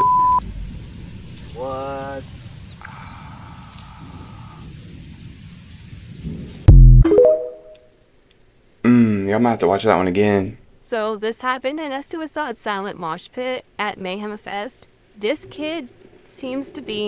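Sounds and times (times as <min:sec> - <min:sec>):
loud deep boom: 0:06.7 - 0:07.1
brief pitched note: 0:06.7 - 0:07.8
short ringing tone: 0:06.8 - 0:07.8.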